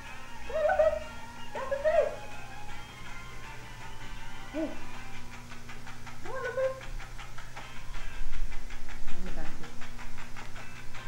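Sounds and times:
steady low hum: 0.0s - 11.0s
person calling hey: 0.4s - 2.4s, 4.5s - 5.0s.

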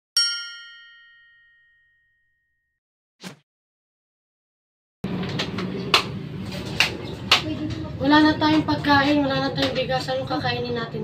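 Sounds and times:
metallic ding: 0.2s - 2.2s.

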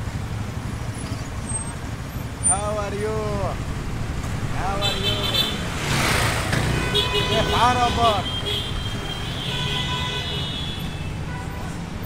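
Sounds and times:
cars idling in traffic: 0.0s - 12.0s.

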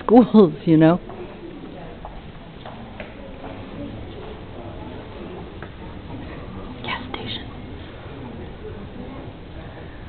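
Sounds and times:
faint murmuring voices: 0.0s - 10.0s
person whispering: 6.8s - 7.6s.

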